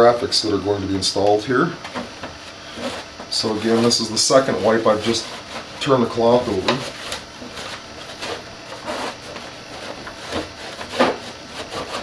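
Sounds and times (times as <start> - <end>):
cloth rubbing on fiberglass: 2.0 - 12.0.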